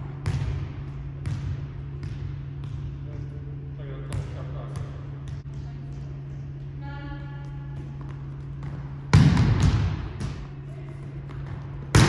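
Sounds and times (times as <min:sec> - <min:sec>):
volleyball bouncing on wooden floor: 0:00.0 - 0:03.3, 0:04.0 - 0:06.6, 0:07.4 - 0:12.0
low hum: 0:00.0 - 0:12.0.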